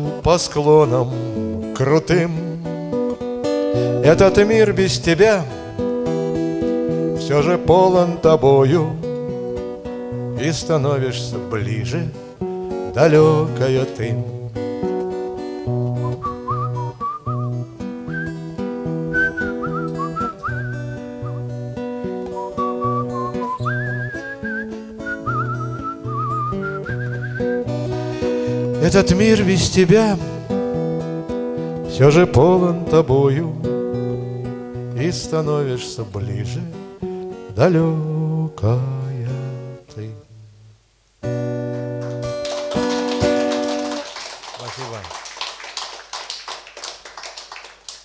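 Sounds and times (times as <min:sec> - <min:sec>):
acoustic guitar accompaniment: 0:00.0 - 0:45.6
man whistling a melody: 0:15.9 - 0:21.6, 0:22.3 - 0:28.8
sparse hand claps: 0:41.8 - 0:48.0.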